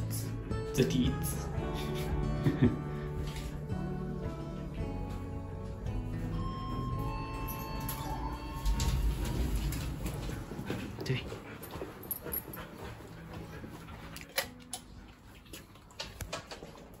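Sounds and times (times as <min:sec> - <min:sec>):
dog whining: 0:07.1 - 0:09.6
low rumble: 0:08.1 - 0:11.0.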